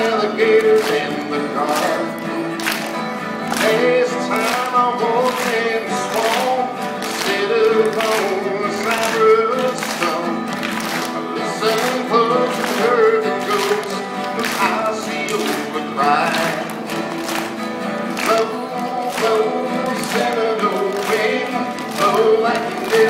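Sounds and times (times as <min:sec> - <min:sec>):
acoustic guitars strummed: 0:00.0 - 0:23.0.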